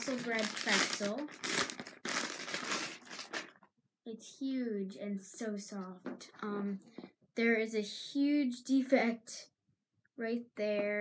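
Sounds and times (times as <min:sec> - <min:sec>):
plastic packaging crinkling: 0:00.0 - 0:03.7.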